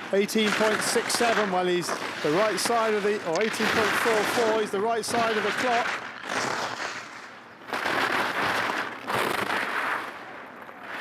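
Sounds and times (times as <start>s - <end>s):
skis scraping on hard snow: 0.0s - 11.0s.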